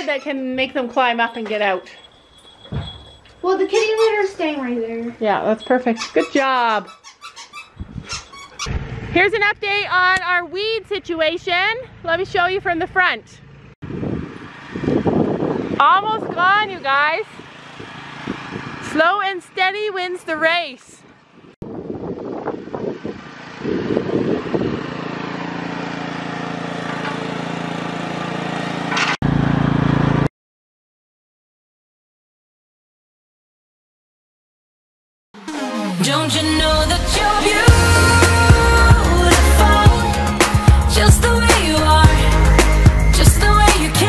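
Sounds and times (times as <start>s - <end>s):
rustling and bumps: 0.7s - 4.0s
squeaky dog toy squeaking: 1.2s - 4.5s, 5.2s - 8.7s
handling thumps: 1.4s - 4.0s
small engine running: 8.6s - 9.6s, 17.3s - 19.1s, 22.5s - 30.3s.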